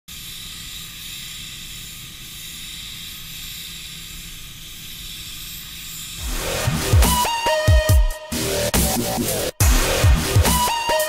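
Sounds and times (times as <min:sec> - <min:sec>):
spray gun air hissing: 0:00.1 - 0:07.7
spray booth hum: 0:00.1 - 0:11.0.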